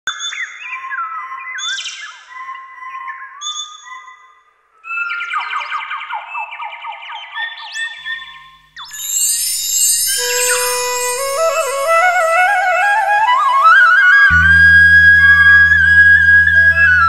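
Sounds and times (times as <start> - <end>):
birds whistling and chirping: 0.1 - 14.0.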